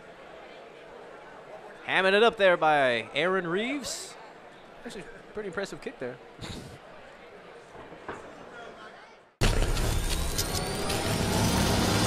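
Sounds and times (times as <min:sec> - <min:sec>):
cinematic riser: 0:09.4 - 0:12.0.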